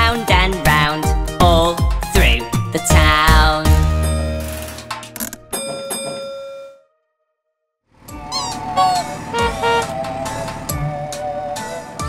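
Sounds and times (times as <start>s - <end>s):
children's song: 0.0s - 3.7s
bright instrumental intro: 8.0s - 12.0s.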